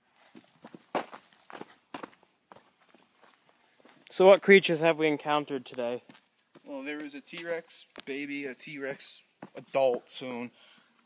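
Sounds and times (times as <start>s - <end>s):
footsteps on dirt and dead leaves: 0.2s - 4.0s.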